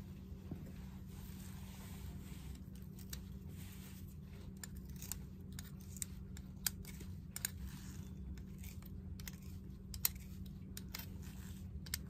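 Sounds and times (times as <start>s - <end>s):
pliers clicking and scraping metal: 4.6s - 12.0s.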